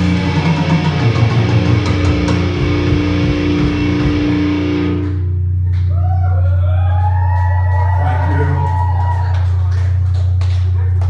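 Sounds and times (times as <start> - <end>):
low bass drone: 0.0 - 11.0.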